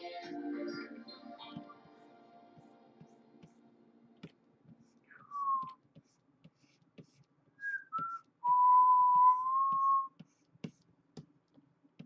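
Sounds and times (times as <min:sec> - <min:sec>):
person whistling: 0:05.1 - 0:05.8, 0:07.6 - 0:10.2.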